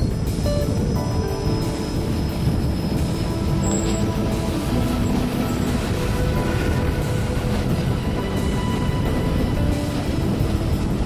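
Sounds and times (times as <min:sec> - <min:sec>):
train wheels rumbling: 0:00.0 - 0:11.0.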